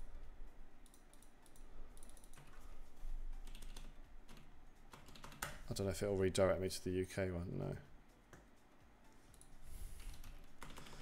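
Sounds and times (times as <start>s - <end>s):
keyboard typing: 0.8s - 2.7s, 3.3s - 5.6s, 9.2s - 11.0s.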